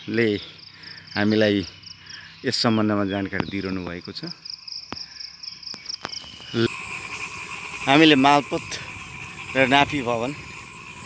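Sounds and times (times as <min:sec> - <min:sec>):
high-pitched insect chorus: 0:00.0 - 0:11.0
man speaking: 0:07.8 - 0:10.4.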